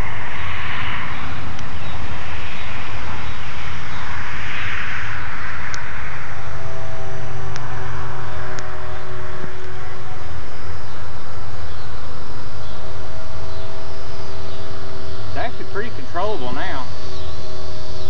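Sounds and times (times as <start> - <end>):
model airplane motor droning: 0.0 - 18.0.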